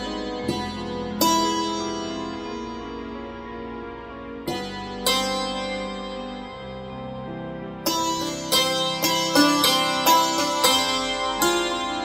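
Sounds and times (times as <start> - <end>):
hammered dulcimer melody: 0.0 - 12.0.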